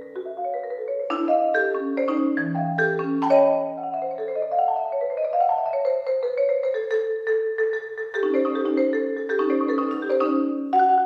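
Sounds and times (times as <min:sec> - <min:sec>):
marimba played with mallets: 0:00.0 - 0:11.0.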